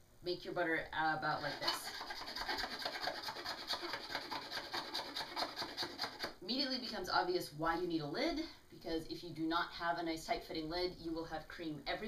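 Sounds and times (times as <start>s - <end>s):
wooden dasher churning cream: 1.4s - 6.4s.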